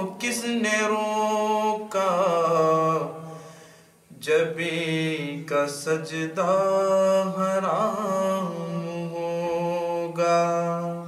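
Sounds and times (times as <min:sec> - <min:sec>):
man singing a long note: 0:04.1 - 0:11.0.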